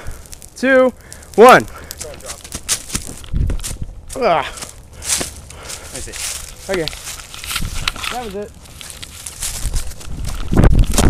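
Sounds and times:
running footsteps on leaves: 1.5s - 10.6s.

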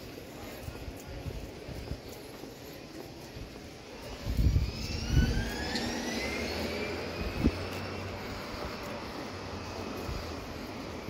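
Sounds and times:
steady low rumble: 3.3s - 11.0s
motor whine rising in pitch: 4.1s - 9.0s.

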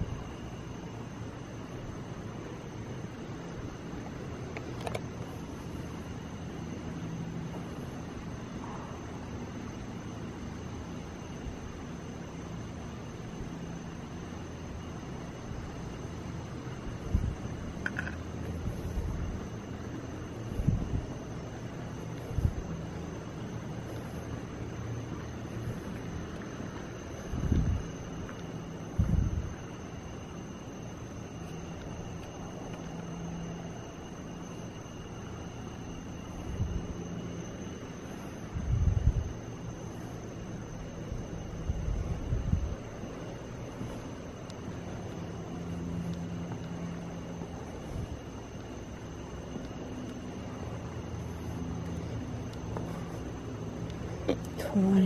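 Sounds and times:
low outdoor rumble: 0.0s - 55.0s.

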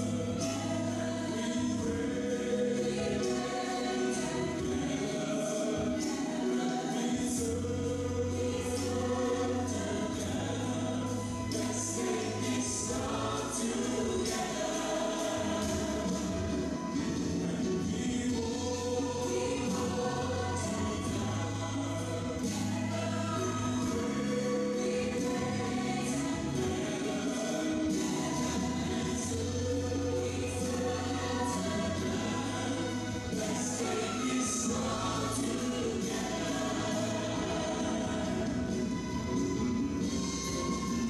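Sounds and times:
gospel choir with backing band: 0.0s - 41.0s.

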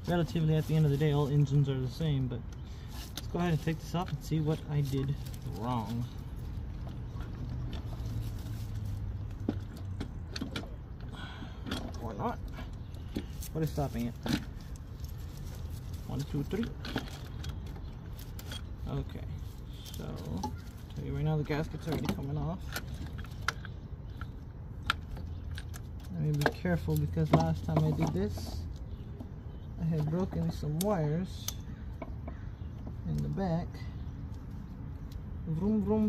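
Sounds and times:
steady low hum: 9.2s - 21.8s.

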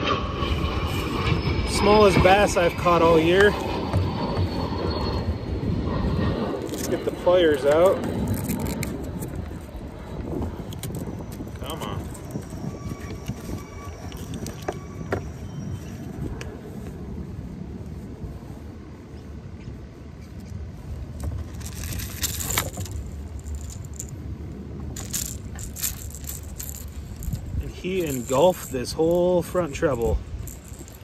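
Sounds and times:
low rumble of wind: 0.0s - 31.0s.

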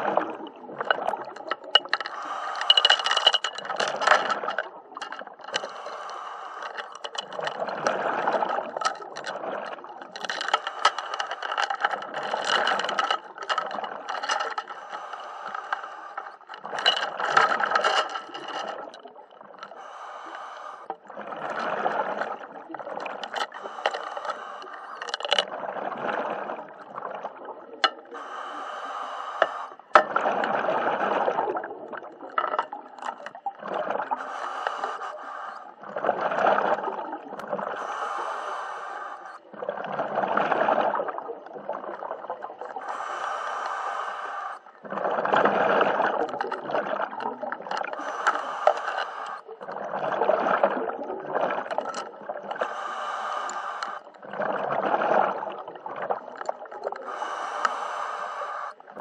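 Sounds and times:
diver breathing through regulator: 0.0s - 18.9s, 19.6s - 22.4s, 23.0s - 25.5s, 27.9s - 31.5s, 34.0s - 36.8s, 37.6s - 39.5s, 42.7s - 45.0s, 47.8s - 49.8s, 52.5s - 54.3s, 56.9s - 59.0s.

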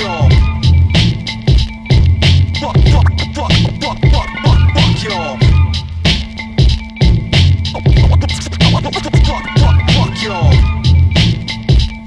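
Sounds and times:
instrumental hip-hop beat: 0.0s - 12.0s
turntable scratching: 2.6s - 5.2s, 7.4s - 10.4s.

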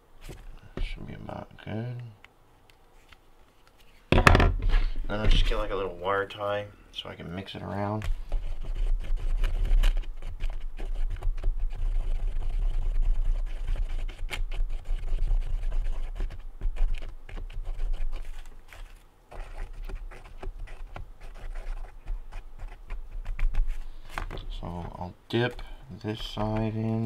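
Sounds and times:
zip tie scraping epoxy: 8.3s - 24.1s.

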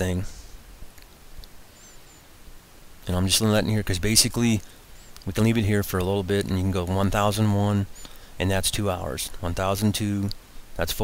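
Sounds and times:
room tone hiss: 0.0s - 11.0s
faint high chirps: 1.6s - 2.4s, 4.9s - 5.3s.

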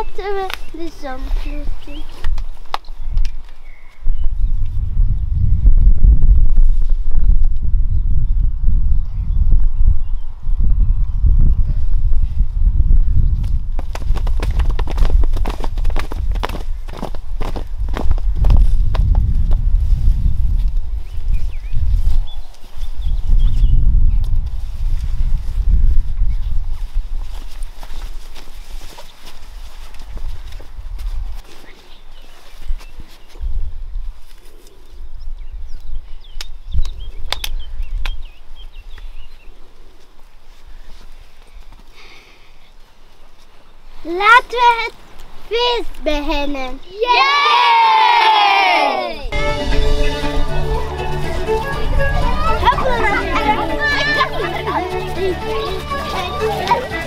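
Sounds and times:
small birds chirping: 0.0s - 5.5s, 20.9s - 24.3s, 31.5s - 46.0s
wind buffeting microphone: 0.0s - 39.4s.

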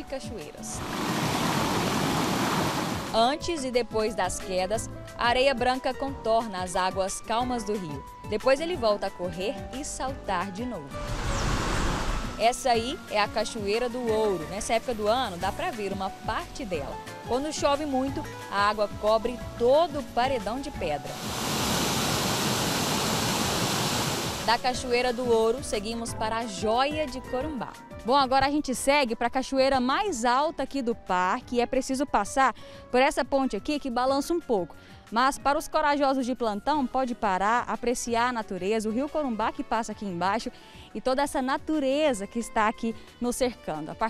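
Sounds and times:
small waterfall rushing: 0.8s - 3.2s, 11.0s - 12.4s, 21.1s - 24.6s.

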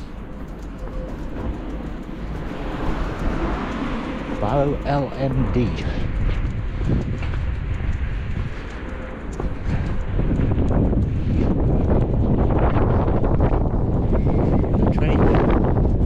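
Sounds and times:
footsteps on pavement: 0.0s - 14.9s
wind buffeting microphone: 0.0s - 16.0s.

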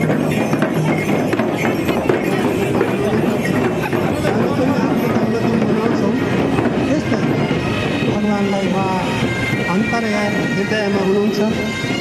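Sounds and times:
crowd voices: 0.0s - 12.0s
drumming: 0.0s - 12.0s
street noise: 0.0s - 12.0s.

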